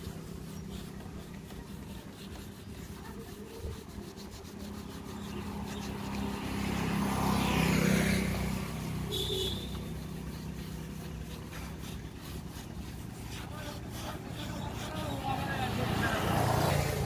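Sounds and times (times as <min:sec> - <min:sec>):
motor vehicle passing by: 0:00.0 - 0:17.0.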